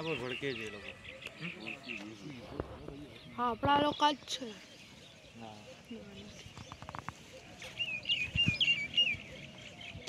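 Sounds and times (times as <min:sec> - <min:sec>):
bird calling with warbling notes: 0:00.0 - 0:10.0.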